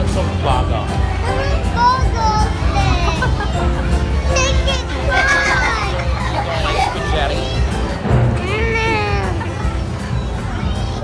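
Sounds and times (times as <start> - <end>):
crowd chatter: 0.0 - 11.0
young girl's high-pitched voice: 1.2 - 3.3, 4.2 - 5.9, 8.4 - 11.0.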